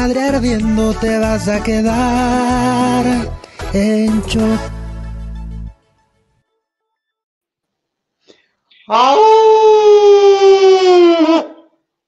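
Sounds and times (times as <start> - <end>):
werewolf howl: 8.9 - 11.6.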